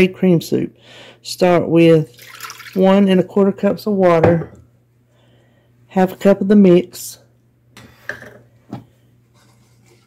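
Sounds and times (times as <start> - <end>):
faint steady low hum: 0.0 - 10.0.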